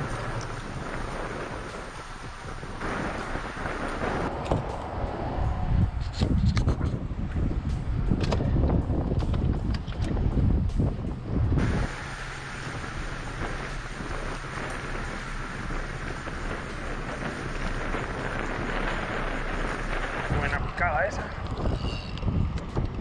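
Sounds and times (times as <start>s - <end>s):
wind buffeting the microphone: 0.0s - 23.0s.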